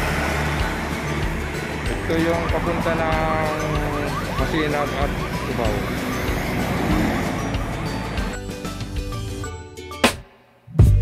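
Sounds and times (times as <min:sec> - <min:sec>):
car passing on highway: 0:00.0 - 0:08.4
background music: 0:00.0 - 0:11.0.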